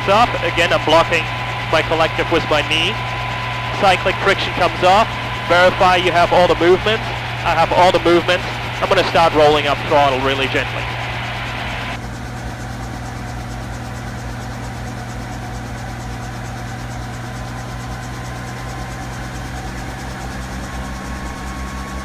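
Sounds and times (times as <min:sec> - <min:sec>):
helicopter engine and rotor: 0:00.0 - 0:22.0
thin rising whine: 0:00.0 - 0:22.0.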